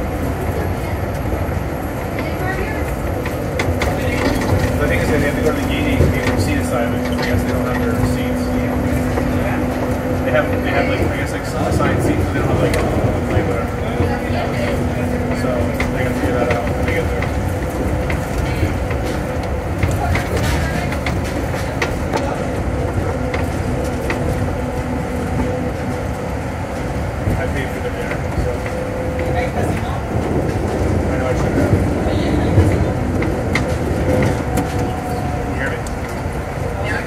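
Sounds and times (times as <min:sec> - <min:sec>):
people-mover car rumbling: 0:00.0 - 0:37.0.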